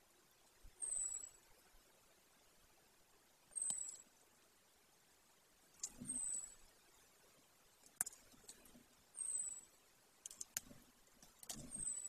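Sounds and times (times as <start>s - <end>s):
beak clicks and rustles: 5.7s - 6.6s, 7.7s - 12.0s.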